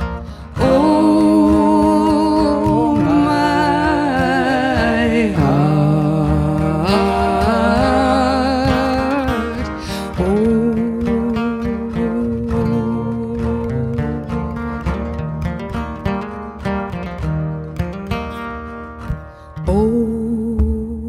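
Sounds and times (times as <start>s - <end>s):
acoustic guitars playing folk song: 0.0s - 21.0s.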